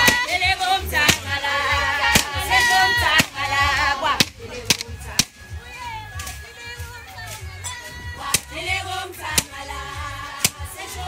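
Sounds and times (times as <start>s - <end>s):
women and girls singing: 0.0s - 11.0s.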